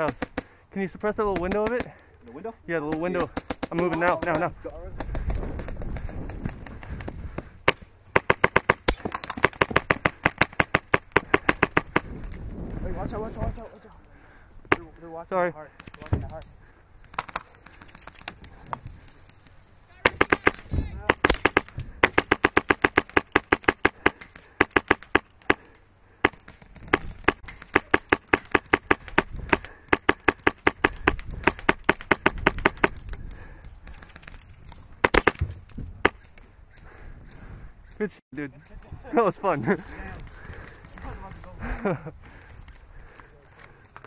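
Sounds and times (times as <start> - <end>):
airsoft rifle firing: 7.7 - 12.1, 20.0 - 33.0, 35.0 - 36.2.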